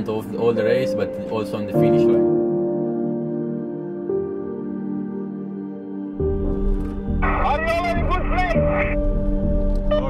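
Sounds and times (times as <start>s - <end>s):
background music: 0.0s - 10.0s
man speaking over radio: 7.2s - 9.0s.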